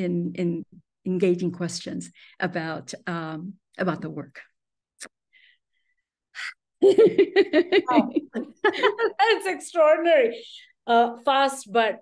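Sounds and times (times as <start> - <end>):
person talking with a laugh: 6.9 - 9.5.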